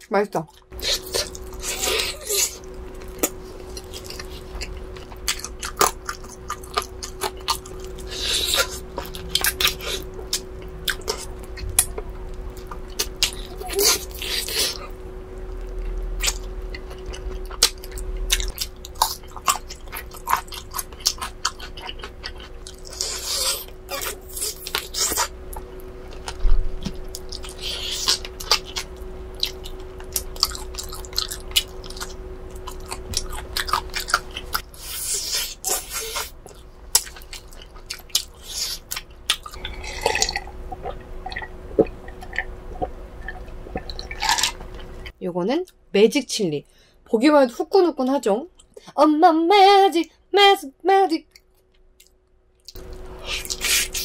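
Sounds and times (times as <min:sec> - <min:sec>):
faint steady hum: 0:00.0 - 0:54.0
chewing and biting: 0:00.5 - 0:44.9.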